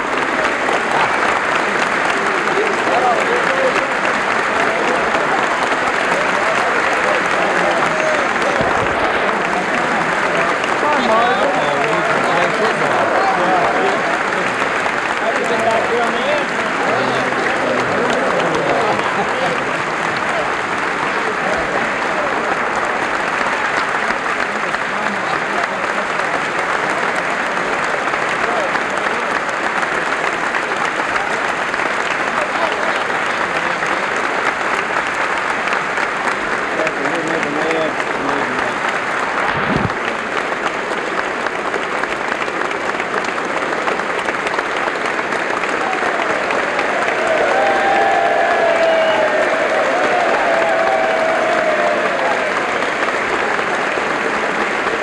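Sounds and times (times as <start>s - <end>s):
crowd applause: 0.0s - 55.0s.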